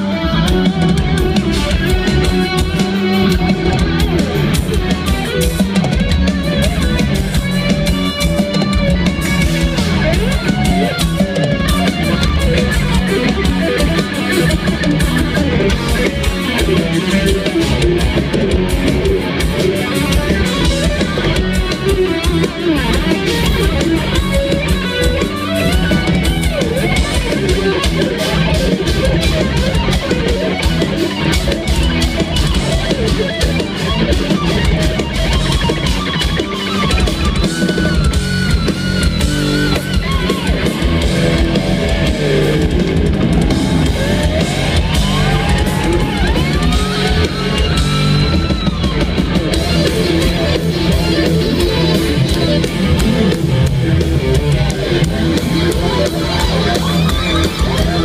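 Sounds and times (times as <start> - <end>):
metal band playing live: 0.0 - 58.0.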